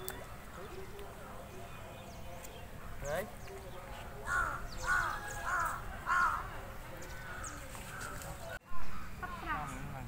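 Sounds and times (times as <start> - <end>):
faint outdoor background noise: 0.0 - 10.0
crow cawing: 4.2 - 6.5.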